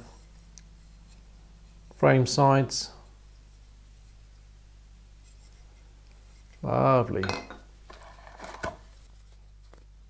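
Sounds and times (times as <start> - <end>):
faint rubbing of wooden part: 0.0 - 2.0, 5.2 - 6.8
steady low hum: 0.0 - 10.0.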